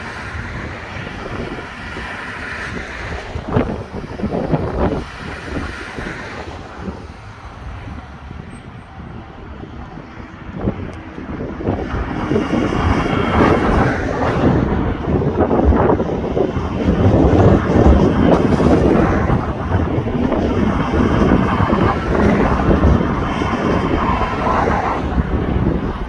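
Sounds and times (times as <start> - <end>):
low rumble of vehicle noise: 0.0 - 26.0
wind buffeting microphone: 0.0 - 26.0.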